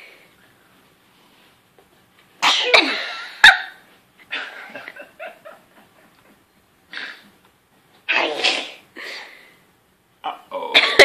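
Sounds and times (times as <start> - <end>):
baby sneezing: 2.4 - 3.0, 8.1 - 8.8.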